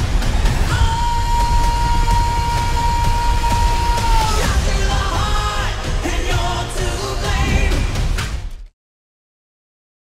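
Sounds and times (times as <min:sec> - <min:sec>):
film trailer music: 0:00.0 - 0:08.8.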